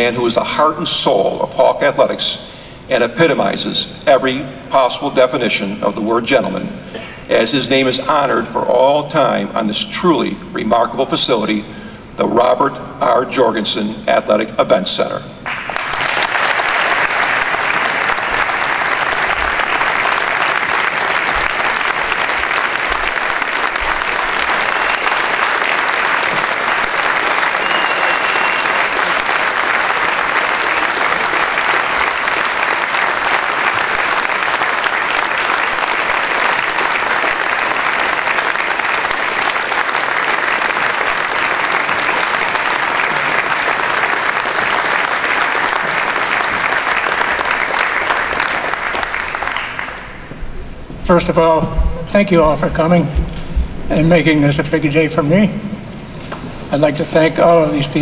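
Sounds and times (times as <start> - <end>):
large crowd applauding: 15.4 - 50.4.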